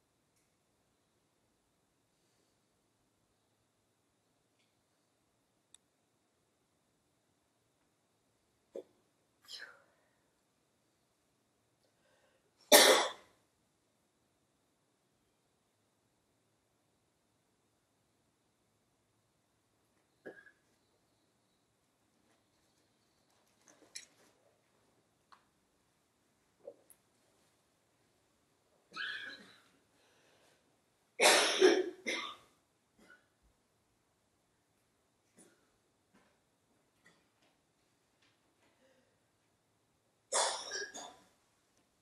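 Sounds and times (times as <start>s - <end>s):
person coughing: 12.7s - 13.2s, 31.2s - 32.4s, 40.3s - 41.2s.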